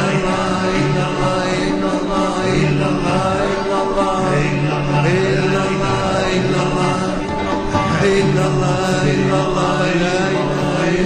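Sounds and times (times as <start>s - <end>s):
devotional chanting with music: 0.0s - 11.0s.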